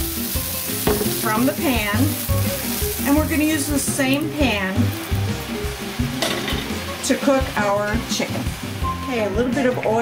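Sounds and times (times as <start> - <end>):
background music: 0.0 - 10.0
vegetables sizzling in a skillet: 0.0 - 10.0.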